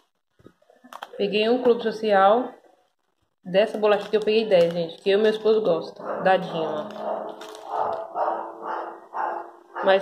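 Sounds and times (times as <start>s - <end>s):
dog barking: 6.0s - 10.0s.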